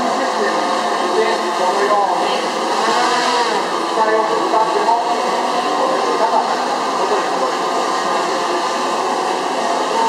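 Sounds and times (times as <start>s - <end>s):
crowd chatter: 0.0s - 10.0s
drone propellers whirring: 0.0s - 10.0s.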